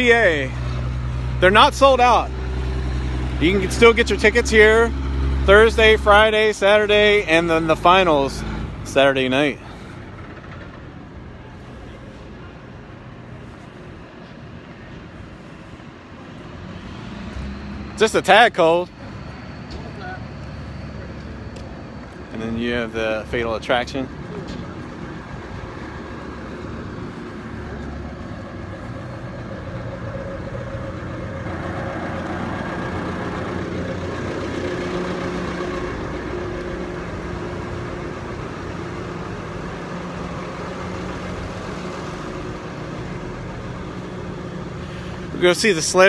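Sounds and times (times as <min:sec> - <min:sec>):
engine idling: 0:00.0 - 0:16.4, 0:18.6 - 0:46.0.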